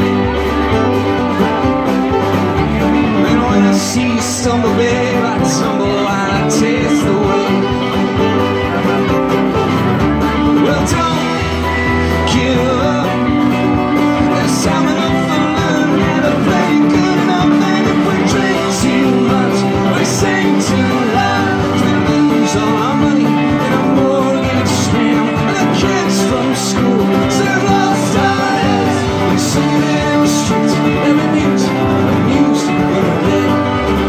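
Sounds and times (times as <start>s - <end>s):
country rock band playing: 0.0s - 34.0s
fiddle lead: 0.0s - 34.0s.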